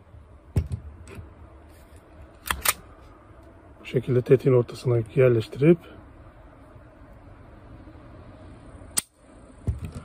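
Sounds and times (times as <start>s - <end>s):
sharp click: 2.4s - 2.8s.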